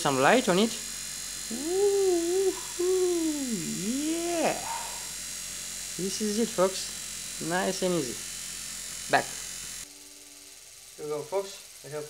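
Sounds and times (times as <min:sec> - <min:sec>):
wavering voice-like calls: 0:01.5 - 0:05.1.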